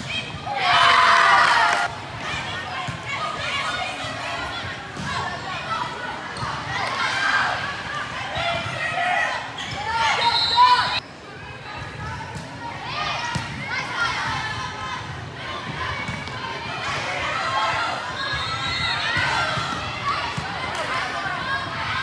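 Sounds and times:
people shouting in a gym: 0.0 - 22.0.

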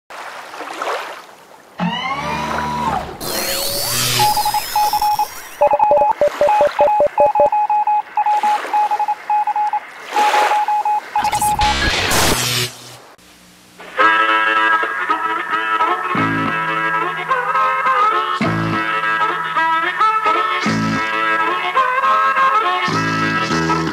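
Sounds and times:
gliding electronic tones: 3.2 - 9.6, 10.2 - 12.6
short high beeps: 3.2 - 11.9
lower beeps and clicks: 3.2 - 12.1.

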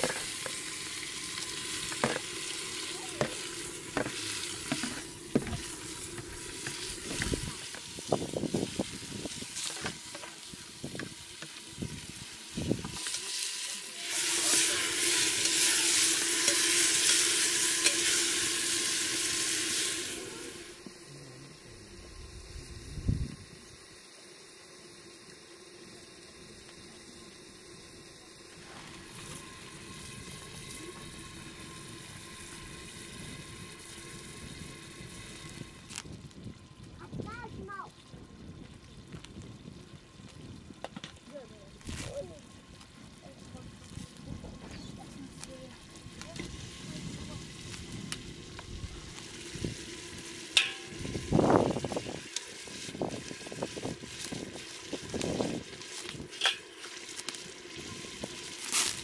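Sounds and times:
metal skimmer scraping a pot: 0.0 - 7.8, 49.8 - 59.0
tomatoes sizzling in a pot: 0.0 - 59.0.

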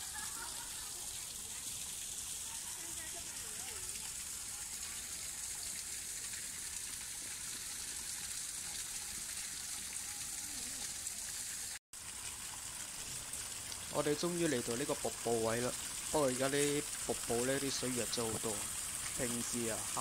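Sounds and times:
water splashing into pond: 0.0 - 20.0.

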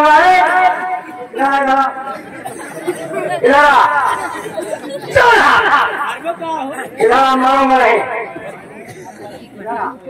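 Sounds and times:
overlapping voices chattering: 0.0 - 10.0.

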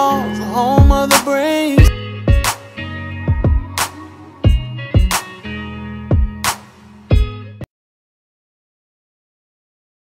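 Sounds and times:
held chords: 0.0 - 7.7
kick drum thumps: 0.8 - 1.1, 1.8 - 2.5, 3.3 - 3.8, 4.5 - 5.2, 6.1 - 6.4.

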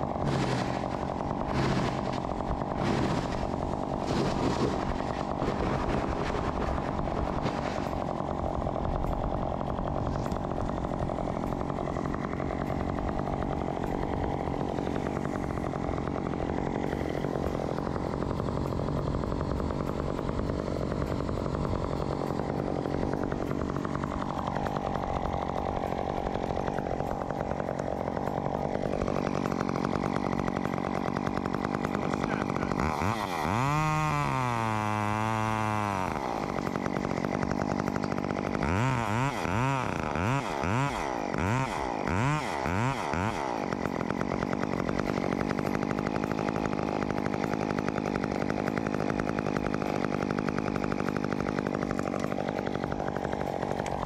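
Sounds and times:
chainsaw running and revving: 0.0 - 54.0.

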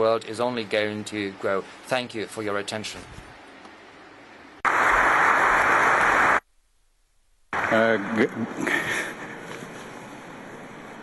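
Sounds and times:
audience applauding: 4.6 - 6.4.

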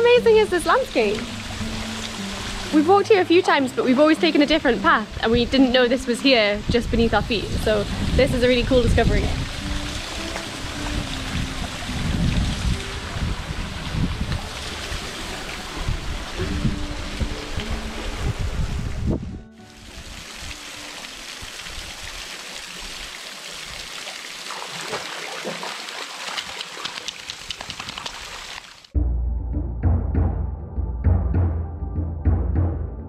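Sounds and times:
waterfall splashing into pool: 7.7 - 16.5, 19.7 - 29.0.

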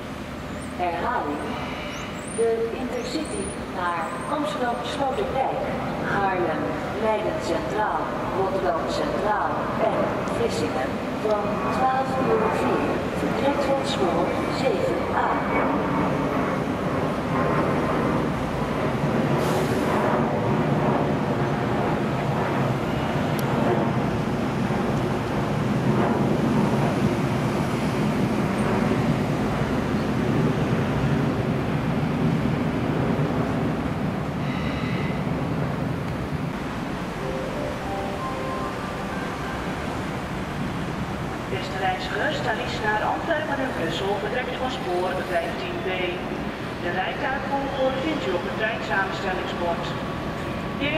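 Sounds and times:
train rumble: 0.0 - 50.9.

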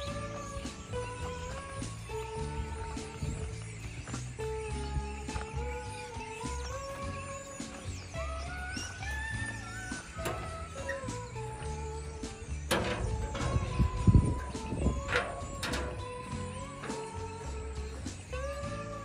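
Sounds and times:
melody of gliding notes: 0.0 - 19.0
repeating bass line: 4.8 - 19.0.

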